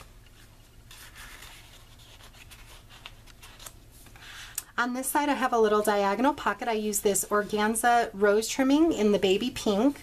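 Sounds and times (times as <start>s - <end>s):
paper rubbing and rustling: 0.0s - 4.6s.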